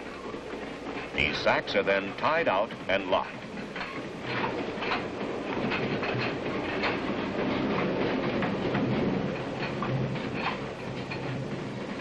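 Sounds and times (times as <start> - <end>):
train rumbling on rails: 0.0 - 12.0
wheels clicking over rail joints: 0.0 - 12.0.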